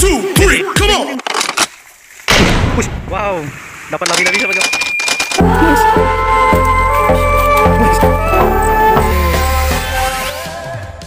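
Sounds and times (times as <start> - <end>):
loud booming hit with heavy bass: 2.3 - 3.2.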